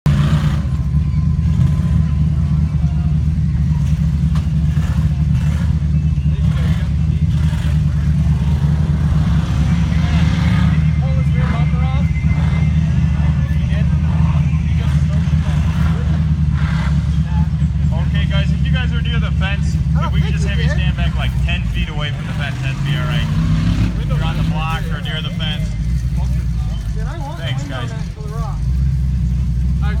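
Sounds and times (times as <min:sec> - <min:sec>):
buggy engine droning under load: 0:00.0 - 0:30.0.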